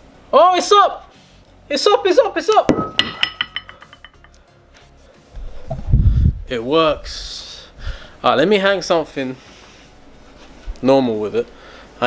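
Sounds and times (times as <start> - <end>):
weight plate clanking on metal: 2.8 - 4.3.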